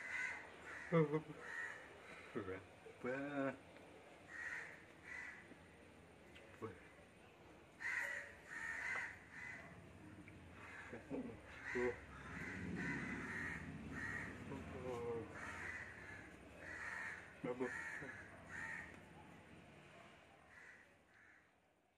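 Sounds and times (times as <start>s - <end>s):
crows cawing: 0.0s - 2.4s, 4.3s - 5.7s, 7.8s - 19.2s, 20.4s - 21.6s.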